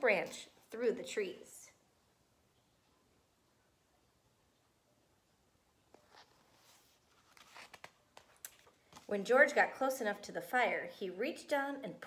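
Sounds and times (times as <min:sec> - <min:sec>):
pages turning: 0:05.9 - 0:09.2.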